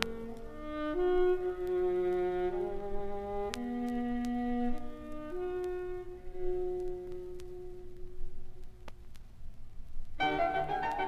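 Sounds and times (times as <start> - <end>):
quiet chamber music: 0.0 - 8.8, 10.2 - 11.0.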